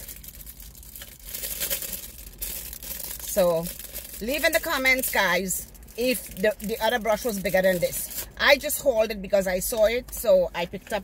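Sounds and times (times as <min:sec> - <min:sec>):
plastic packaging crinkling: 0:00.0 - 0:08.4.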